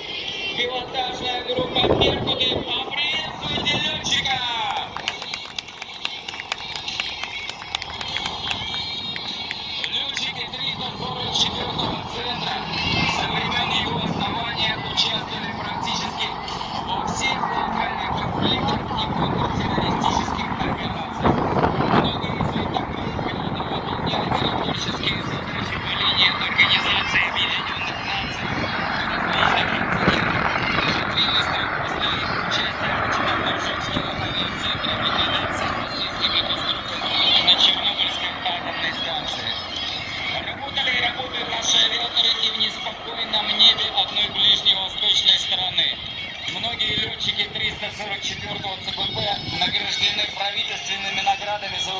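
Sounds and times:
helicopters flying overhead: 0.0 - 51.9
voices: 0.0 - 51.9.

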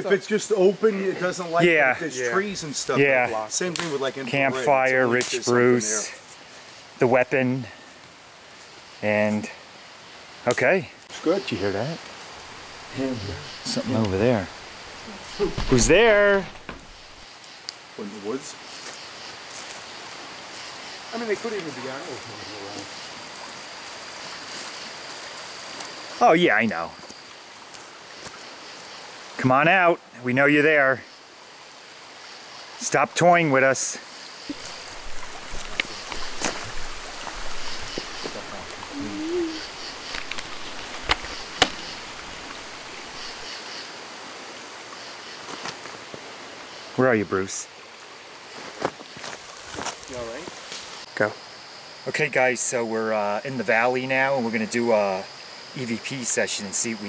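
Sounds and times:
outdoor night background hiss: 0.0 - 57.0
faint voice-like call: 15.0 - 16.5, 38.3 - 40.0
sharp clicks or knocks: 40.1 - 41.9.

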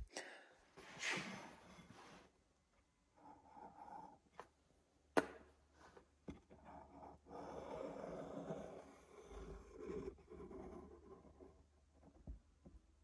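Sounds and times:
soft rustling and scraping: 0.8 - 2.4.

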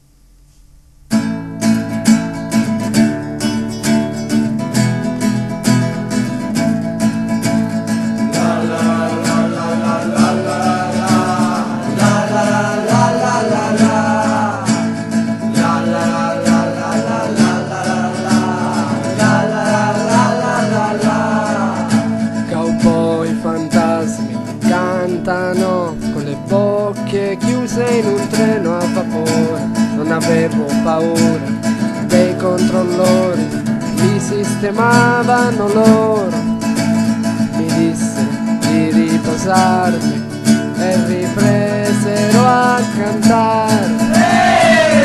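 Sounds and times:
acoustic guitar strumming: 0.0 - 45.0.

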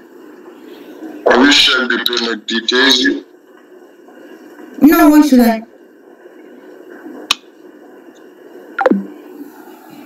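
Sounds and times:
voice-call line hiss: 0.2 - 10.0.

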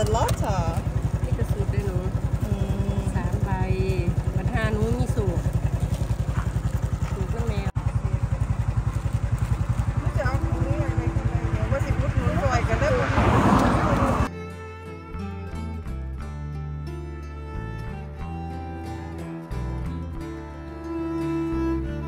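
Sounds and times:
people talking: 0.0 - 5.5, 7.0 - 8.2, 9.9 - 14.2
small motorcycle engine idling: 0.0 - 14.3.

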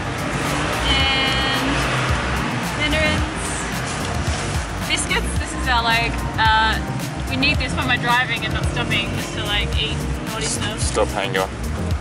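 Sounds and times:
background music: 0.0 - 12.0
cars passing: 0.0 - 12.0.

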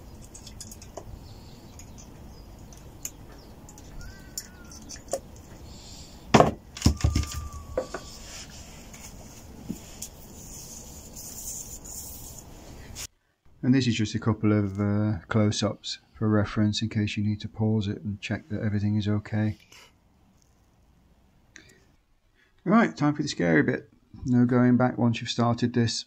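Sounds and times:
faint squeaks of wiping: 7.3 - 13.1.

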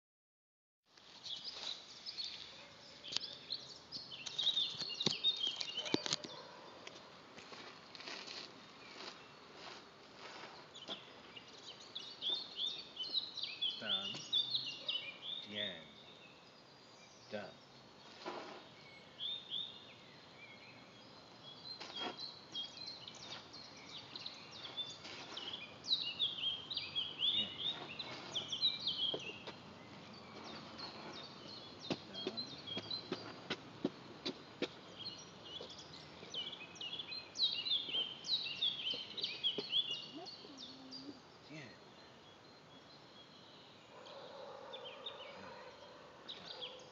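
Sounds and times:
songbirds chirping: 0.9 - 46.9.

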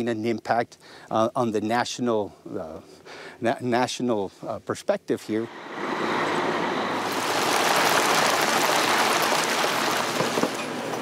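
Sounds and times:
vehicle passing on road: 5.5 - 11.0.

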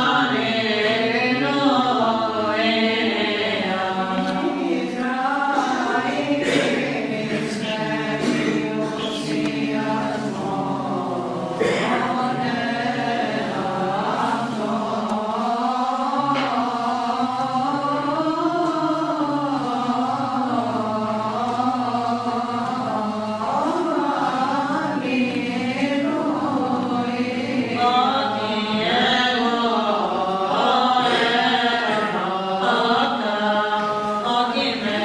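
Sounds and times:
voices chanting slow melody: 0.0 - 35.0.

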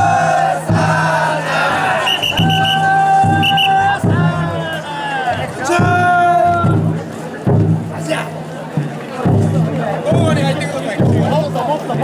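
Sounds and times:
people shouting a chant: 0.0 - 6.8
crowd noise: 0.0 - 12.0
taiko drum beats: 0.0 - 12.0.

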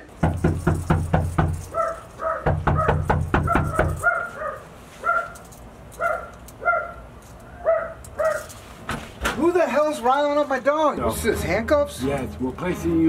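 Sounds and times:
fist knocking on wooden door: 0.2 - 1.6, 2.4 - 4.0
dog barking: 1.6 - 5.4, 6.0 - 8.5.

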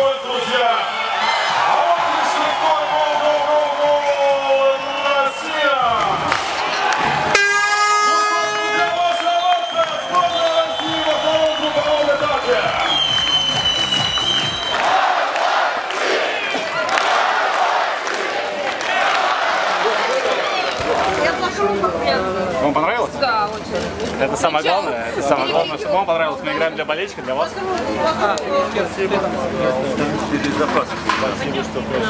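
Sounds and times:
crowd cheering and shouting: 0.0 - 22.2
horn blaring: 7.2 - 12.8.

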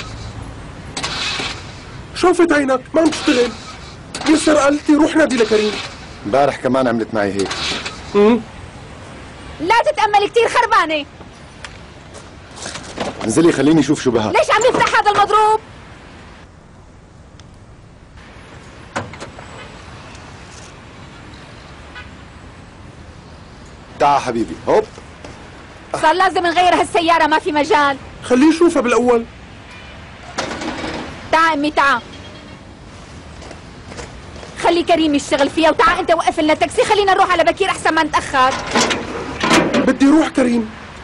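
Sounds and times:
truck door slamming: 18.9 - 19.8, 38.5 - 40.0.

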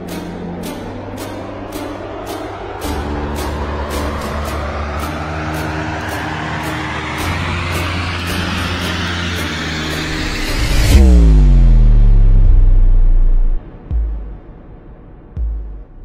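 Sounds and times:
whooshing riser: 0.0 - 15.4
low drone notes: 0.0 - 16.0.

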